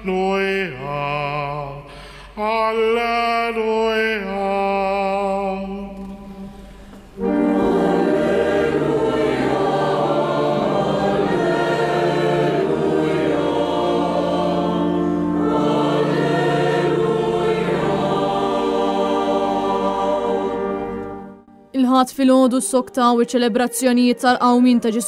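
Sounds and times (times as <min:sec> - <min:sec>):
church choir singing a hymn: 0:06.3 - 0:21.5.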